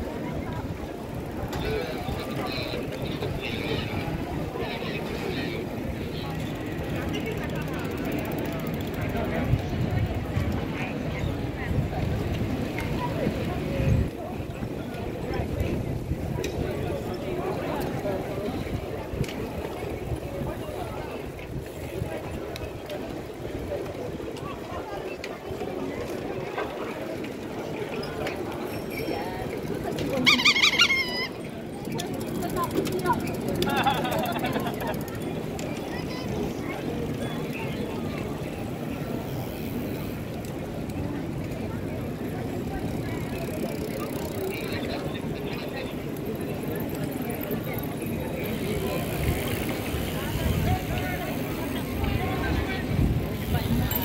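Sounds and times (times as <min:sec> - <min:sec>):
bicycles riding past: 0:00.0 - 0:54.0
people talking: 0:00.0 - 0:54.0.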